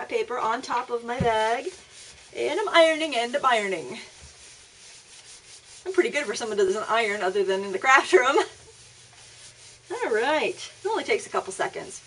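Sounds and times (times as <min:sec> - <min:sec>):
iron rubbing over paper: 0:00.0 - 0:12.0
person speaking: 0:09.8 - 0:12.0.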